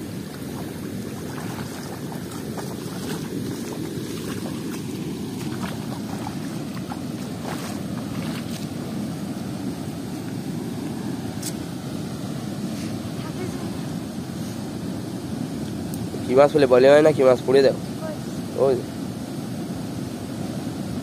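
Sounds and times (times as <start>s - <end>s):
river water rushing through sluice: 0.0s - 18.9s.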